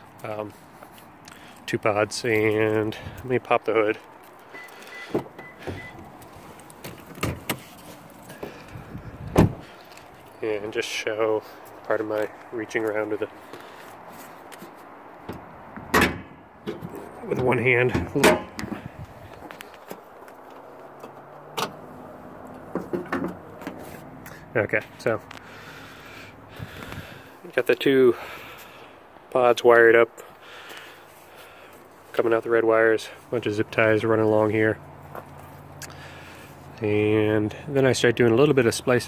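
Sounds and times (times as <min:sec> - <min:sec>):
faint high beep: 0:04.5 - 0:06.0
truck hood handling noise: 0:15.2 - 0:17.0, 0:17.9 - 0:18.8
car door latch clicks and knocks: 0:15.3 - 0:16.8.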